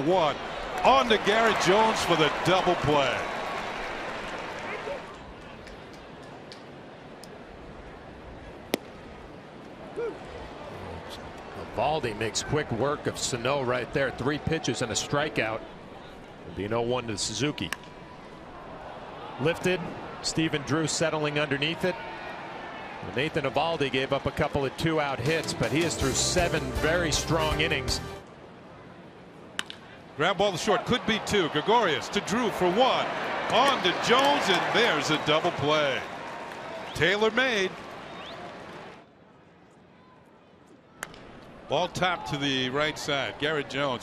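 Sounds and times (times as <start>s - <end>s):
baseball popping into mitt: 8.7s - 9.0s.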